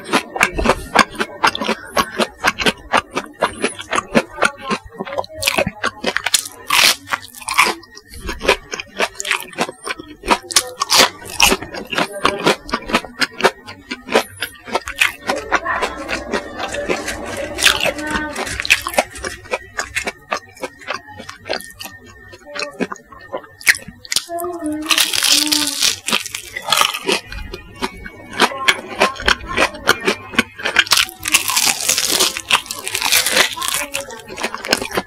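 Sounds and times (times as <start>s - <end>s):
crunching and chewing: 0.0s - 35.0s.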